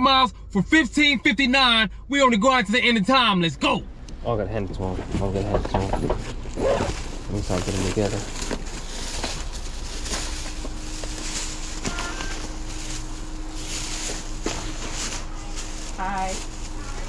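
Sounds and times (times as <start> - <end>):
faint steady hum: 0.0 - 17.0
plastic bags rustling: 5.0 - 17.0
knocks: 5.4 - 6.3.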